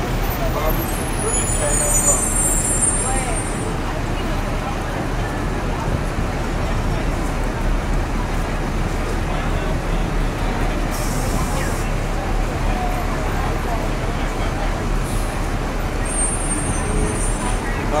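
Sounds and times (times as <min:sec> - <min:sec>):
passersby talking: 0:00.0 - 0:18.0
traffic rumble: 0:00.0 - 0:18.0.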